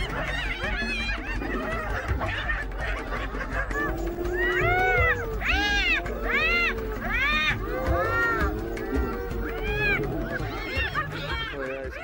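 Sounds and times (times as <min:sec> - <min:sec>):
hyenas giggling and squealing: 0:00.0 - 0:12.0
low drawn-out groaning: 0:03.6 - 0:11.5.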